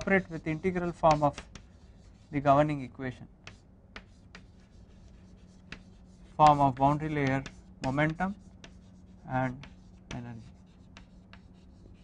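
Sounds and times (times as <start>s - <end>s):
chalk tapping and scratching: 0.0s - 2.8s, 3.4s - 12.0s.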